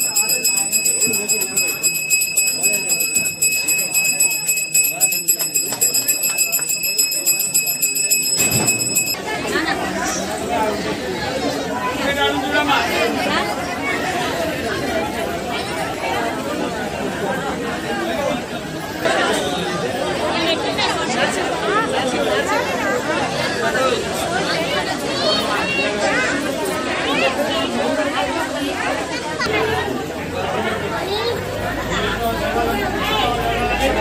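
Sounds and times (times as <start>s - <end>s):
hand bell ringing rapidly: 0.0s - 9.2s
crowd chatter: 0.0s - 34.0s.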